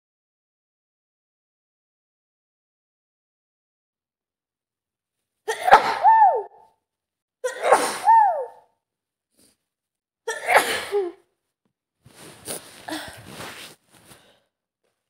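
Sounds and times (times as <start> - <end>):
woman sneezing: 5.5 - 6.6, 7.4 - 8.6, 10.3 - 11.2
breathy sounds: 12.1 - 14.5.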